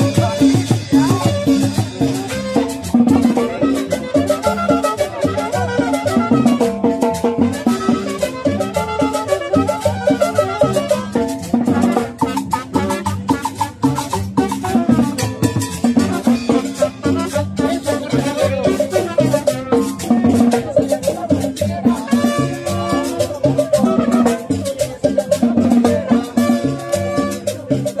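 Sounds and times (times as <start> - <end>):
brass melody: 0.0 - 20.8, 21.6 - 24.9, 25.8 - 28.0
percussion beat: 0.0 - 28.0.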